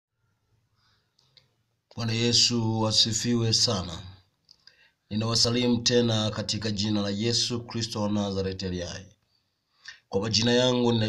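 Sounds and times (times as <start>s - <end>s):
man's voice: 1.9s - 4.2s, 5.1s - 9.2s, 9.9s - 11.0s.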